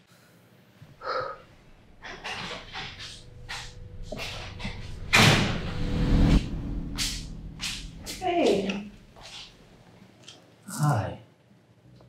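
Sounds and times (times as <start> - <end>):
loud rush of noise: 1.5 - 9.8
door opening: 1.6 - 9.7
low thump: 1.8 - 9.2.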